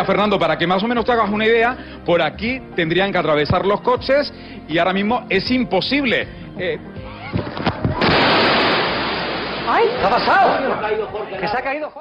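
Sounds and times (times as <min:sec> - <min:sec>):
loud splash into river: 0:08.0 - 0:10.6
rushing water: 0:08.0 - 0:10.8.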